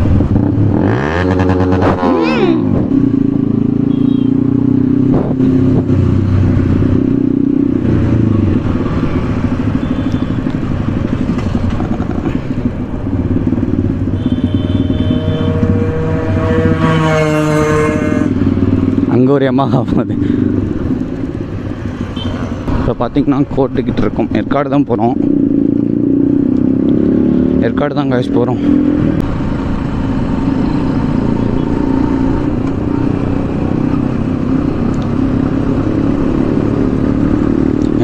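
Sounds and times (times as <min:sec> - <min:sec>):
motorcycle engine revving: 0:00.0 - 0:22.9, 0:23.9 - 0:38.0.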